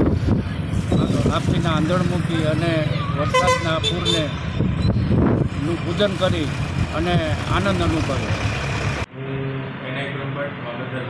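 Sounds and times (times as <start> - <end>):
road traffic engines: 0.0 - 11.0
man talking: 0.9 - 4.4, 5.5 - 8.4, 9.1 - 11.0.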